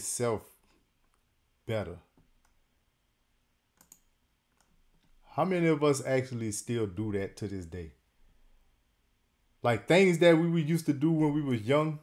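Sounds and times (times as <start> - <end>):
faint clicks: 3.8 - 5.2.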